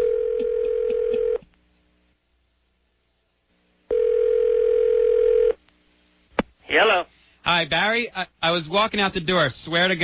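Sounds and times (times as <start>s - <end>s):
telephone ringback tone: 0.0s - 1.4s, 3.9s - 5.6s.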